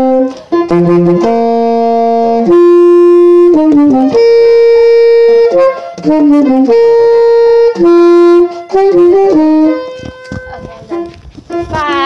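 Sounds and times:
tenor saxophone notes: 0.0s - 12.0s.

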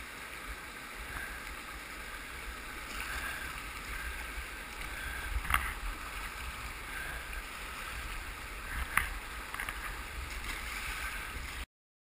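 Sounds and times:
whitewater rapids rushing: 0.0s - 11.6s
paddle splashing in water: 2.7s - 11.6s.

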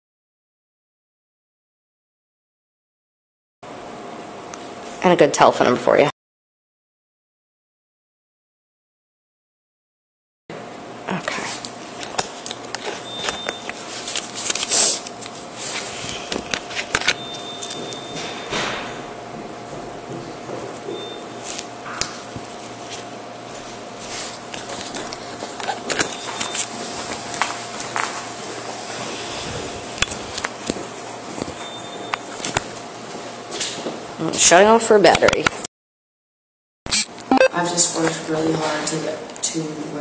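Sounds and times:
short high beeps: 37.3s - 37.6s.

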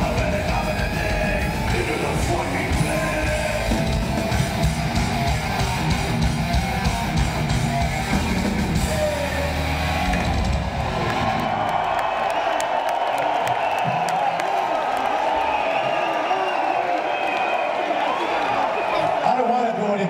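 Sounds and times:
metal band playing live: 0.0s - 11.3s
crowd cheering and whooping: 0.0s - 19.6s.

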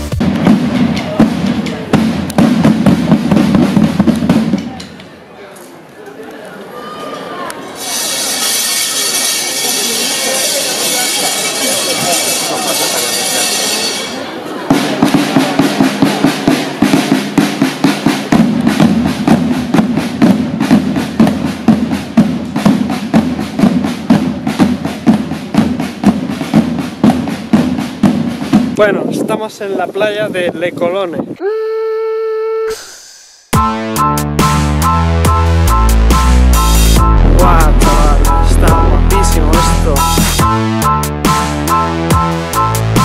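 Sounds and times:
snare drums playing: 0.0s - 4.8s, 12.0s - 29.0s, 33.5s - 43.0s.

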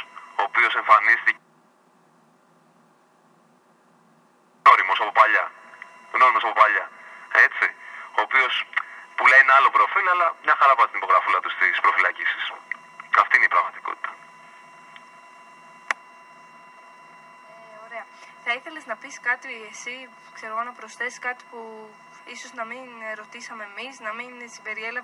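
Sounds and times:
faint telephone line tone: 0.0s - 1.4s, 4.7s - 25.0s
speech over telephone line: 0.0s - 1.4s, 4.6s - 14.6s, 17.5s - 25.0s.

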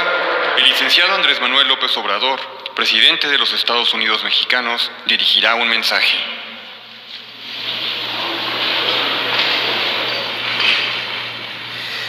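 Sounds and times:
faint electrical hum: 0.4s - 12.0s
audience applause: 7.4s - 12.0s.

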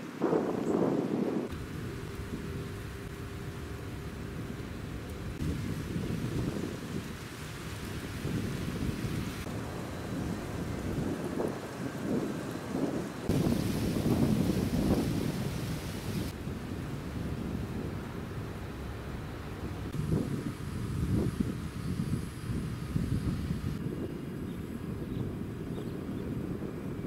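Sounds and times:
wind buffeting microphone: 0.0s - 27.0s
background hiss: 13.2s - 23.8s.

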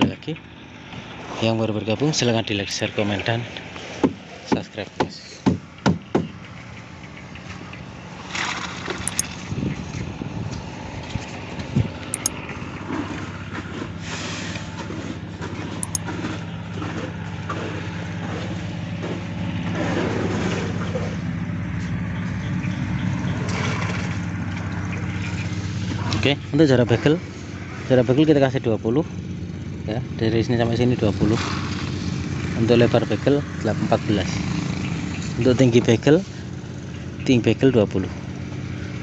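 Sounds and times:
engine running: 5.6s - 39.0s.

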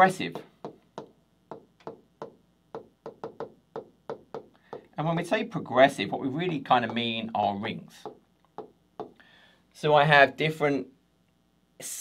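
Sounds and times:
stylus tapping on glass screen: 0.3s - 5.0s, 6.4s - 7.2s, 8.0s - 9.2s.

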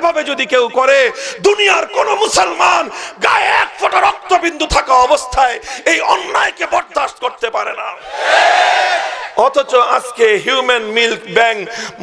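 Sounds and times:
man shouting through loudspeaker: 0.0s - 7.2s.

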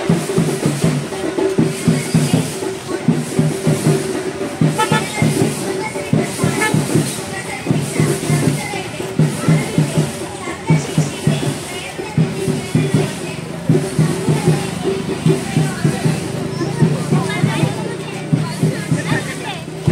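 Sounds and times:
procession drums beating: 0.0s - 19.9s
voices of marchers: 0.0s - 19.9s.

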